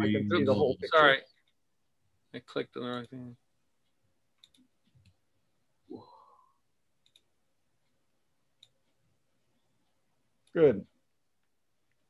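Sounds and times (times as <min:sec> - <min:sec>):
faint computer mouse clicks: 0:03.8 - 0:05.2, 0:07.0 - 0:08.0.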